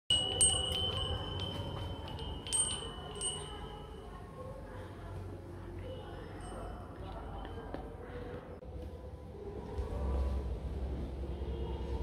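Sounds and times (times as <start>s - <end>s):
wind chime bells ringing: 0.1s - 4.3s, 6.2s - 7.9s.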